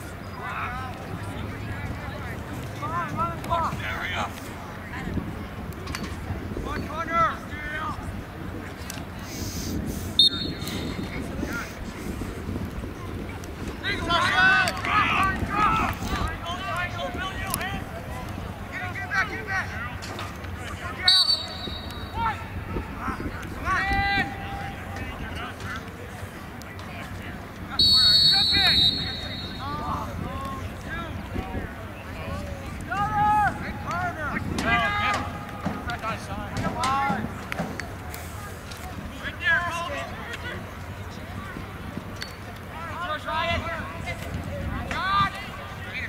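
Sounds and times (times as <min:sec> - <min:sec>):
wind on microphone: 0:08.0 - 0:18.6
referee's whistle blasts: 0:10.2 - 0:11.1, 0:21.0 - 0:22.2, 0:27.8 - 0:29.8
players and spectators shouting: 0:13.8 - 0:26.2, 0:27.0 - 0:37.2
people calling out: 0:27.8 - 0:30.4.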